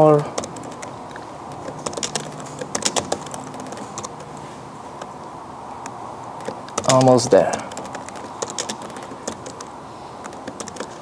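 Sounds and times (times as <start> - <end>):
keyboard key clicks: 0.3 - 4.3, 5.8 - 11.0.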